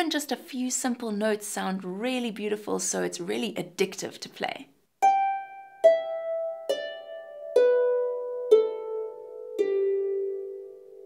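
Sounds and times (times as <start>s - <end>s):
harp plucked notes: 5.0s - 11.0s.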